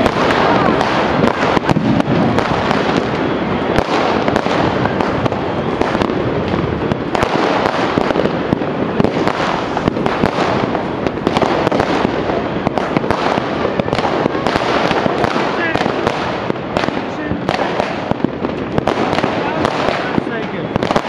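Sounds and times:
fireworks and firecrackers crackling: 0:00.0 - 0:21.0.

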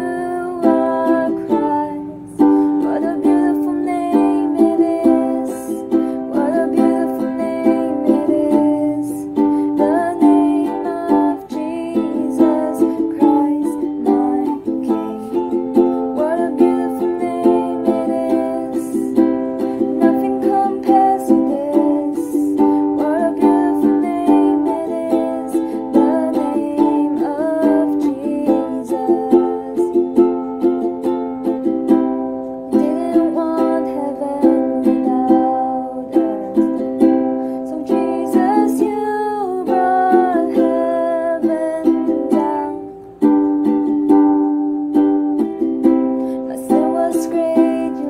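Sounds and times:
ukulele strumming: 0:00.0 - 0:48.0
woman singing: 0:00.0 - 0:48.0.

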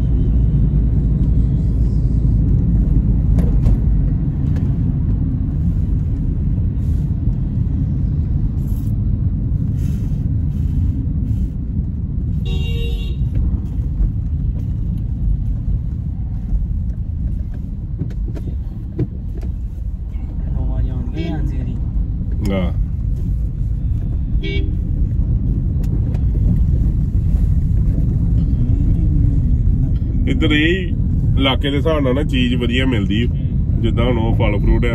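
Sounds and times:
road rumble inside car: 0:00.0 - 0:34.9
car horn toot: 0:12.4 - 0:13.3, 0:24.3 - 0:24.8.

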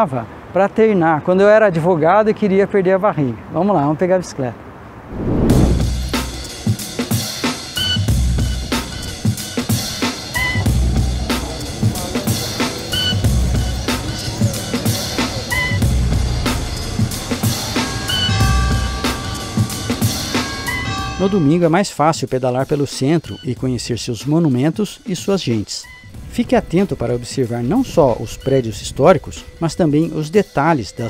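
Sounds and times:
bass-drum thuds: 0:05.2 - 0:06.3.

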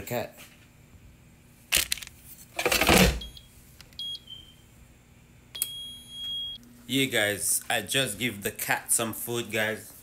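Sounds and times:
air fryer basket clattering: 0:02.6 - 0:03.3
touch panel beeps: 0:03.2 - 0:04.6, 0:05.6 - 0:06.6.

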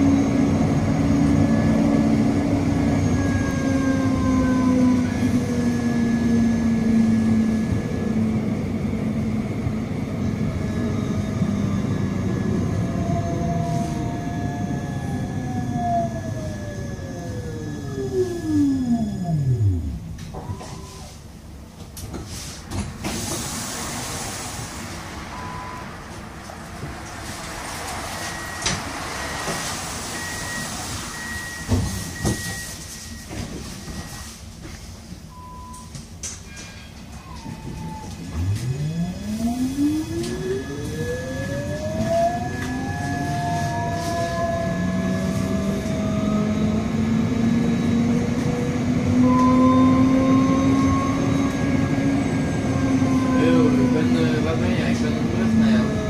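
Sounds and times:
tram electric motor whine: 0:00.0 - 0:22.1, 0:22.8 - 0:32.5, 0:36.2 - 0:56.0
short electronic beeps: 0:20.4 - 0:21.2, 0:25.3 - 0:25.9, 0:30.2 - 0:34.3.

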